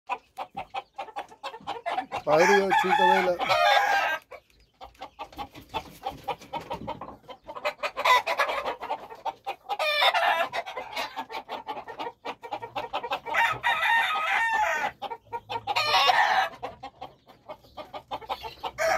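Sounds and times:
rooster crowing: 2.3 - 4.2, 13.3 - 14.9.

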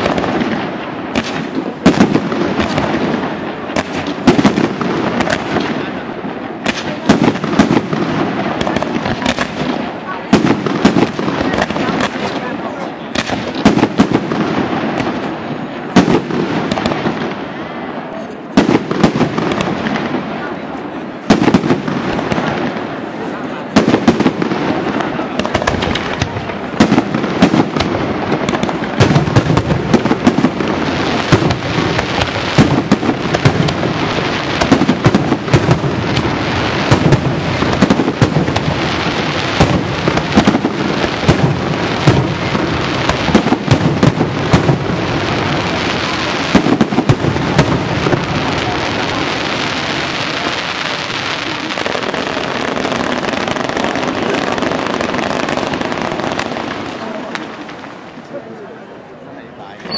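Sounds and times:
fireworks bursting: 0.0 - 59.9.

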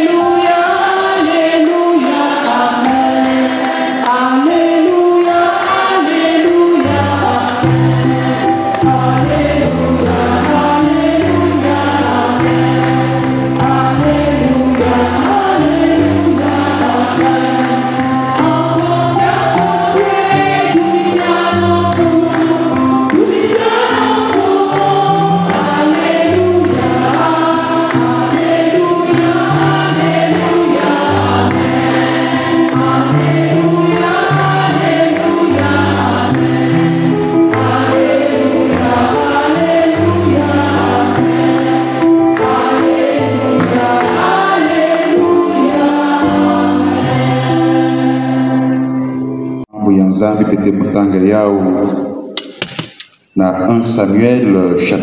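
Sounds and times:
choir singing a hymn: 0.0 - 50.0.

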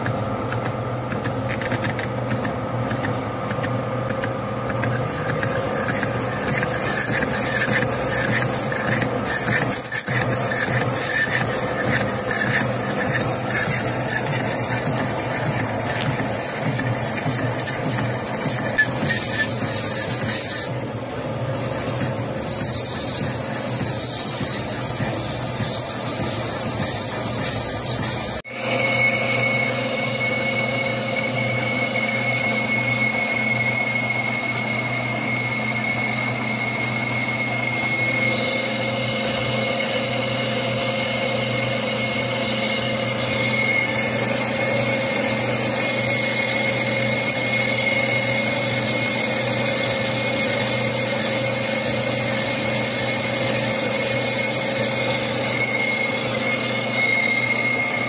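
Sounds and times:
high-pitched cutting whine: 0.0 - 58.0
lathe motor hum: 0.0 - 58.0.

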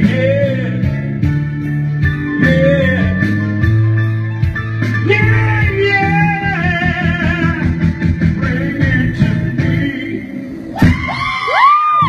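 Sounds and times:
backing music: 0.0 - 11.7.

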